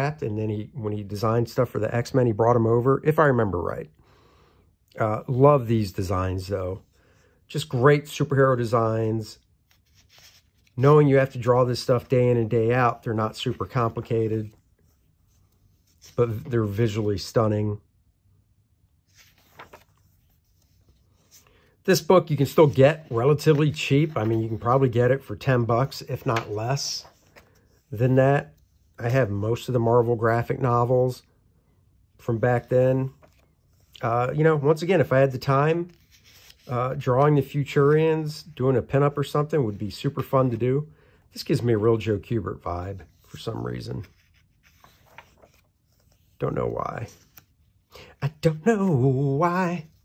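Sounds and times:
man speaking: 0.0 - 4.0, 4.9 - 6.9, 7.5 - 9.4, 10.8 - 14.6, 16.1 - 17.9, 21.8 - 27.2, 27.9 - 31.3, 32.2 - 33.2, 34.0 - 36.0, 36.7 - 44.2, 46.4 - 47.3, 48.0 - 50.0
paper page turning: 9.4 - 17.2, 19.0 - 29.7, 32.6 - 34.8, 35.5 - 38.0, 42.9 - 47.9
hand brushing book pages: 19.1 - 21.5, 43.1 - 47.6.

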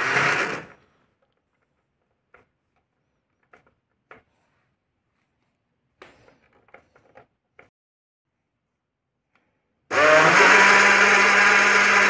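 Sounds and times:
small handling sounds: 0.8 - 7.7.

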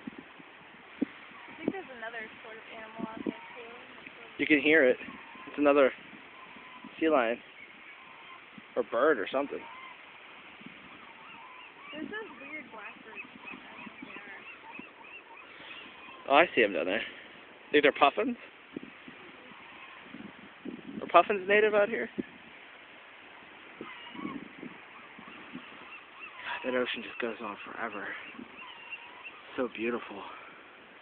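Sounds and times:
ocean waves washing: 0.0 - 31.0
seabird calls: 0.0 - 31.0
wind: 0.0 - 31.0.

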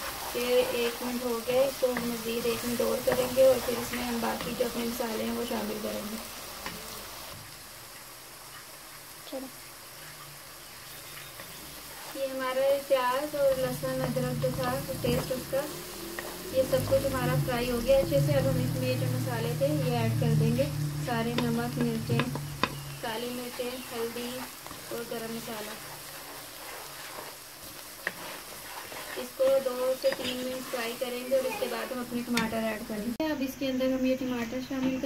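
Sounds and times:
onions sizzling in a pan: 0.0 - 35.0.

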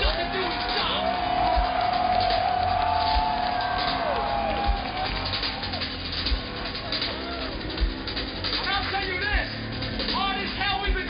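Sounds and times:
crowd voices and whoops: 0.0 - 8.3.

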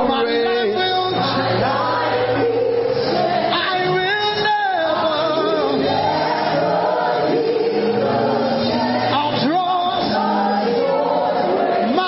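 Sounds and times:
choir singing gospel song: 0.0 - 12.0.

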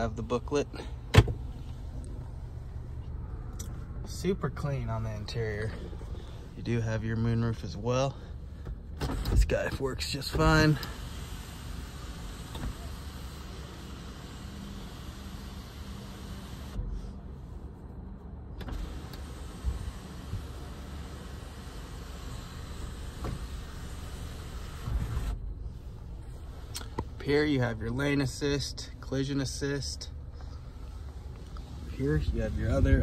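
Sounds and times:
steady low hum: 0.0 - 33.0.

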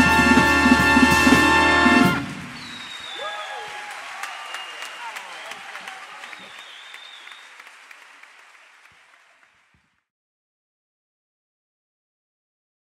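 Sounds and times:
audience applauding: 1.5 - 10.1
whistles and shouts: 2.5 - 7.7.

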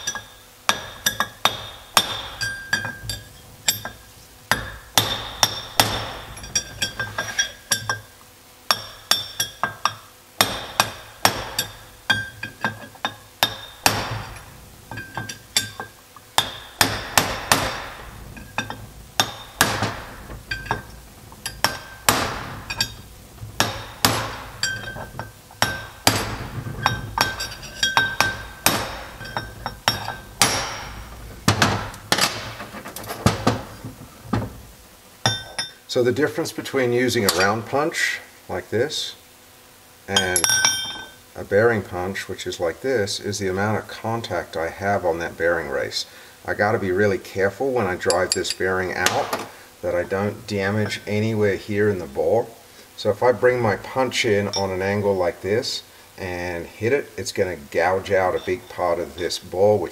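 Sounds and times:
hammer striking steel punch: 0.0 - 8.1, 8.7 - 35.8.

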